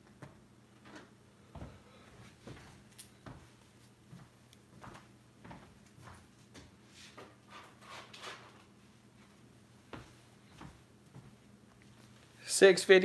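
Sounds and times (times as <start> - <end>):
low steady hum: 0.0 - 13.0
small clicks and rustles: 2.4 - 3.9.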